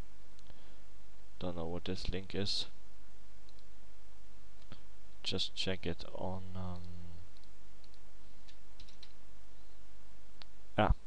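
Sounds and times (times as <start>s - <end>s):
steady low hum: 0.0s - 11.0s
mouse and keyboard clicks: 6.8s - 9.2s.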